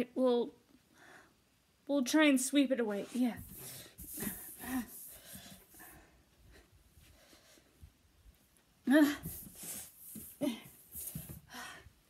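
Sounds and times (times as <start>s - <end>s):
steady rustling hiss: 0.0s - 12.0s.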